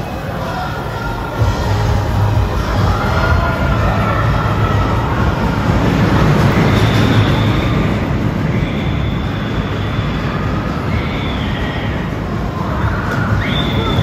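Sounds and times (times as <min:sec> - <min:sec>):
roller coaster rumbling on track: 0:00.0 - 0:14.0
faint high squeals: 0:02.5 - 0:14.0.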